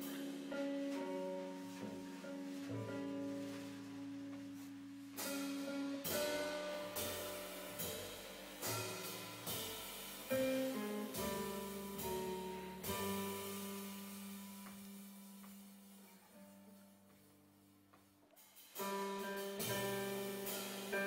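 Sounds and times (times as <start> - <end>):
drums with cymbal hits: 0.0 - 16.5, 18.4 - 21.0
double bass: 0.0 - 18.2.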